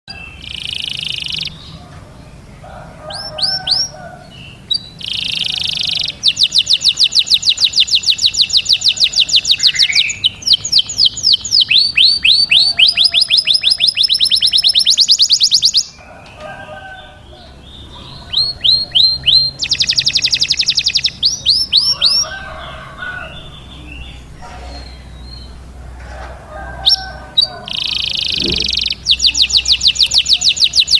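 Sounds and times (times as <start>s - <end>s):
canary singing trills: 0.1s - 25.8s, 26.7s - 30.9s.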